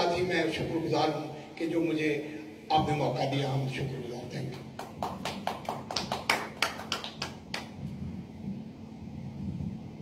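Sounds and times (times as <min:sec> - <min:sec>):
small audience applauding: 0:04.6 - 0:07.8.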